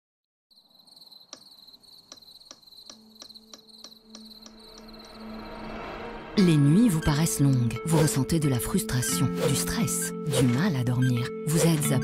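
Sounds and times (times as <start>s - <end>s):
crickets chirping: 0.5s - 6.2s
regular ticking: 1.2s - 5.2s
soft rising swell: 4.5s - 7.9s.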